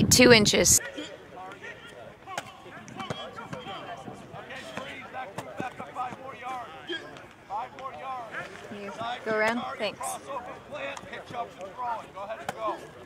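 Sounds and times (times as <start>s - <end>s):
distant chatter of people: 0.0s - 13.0s
footballs thudding: 2.3s - 3.8s.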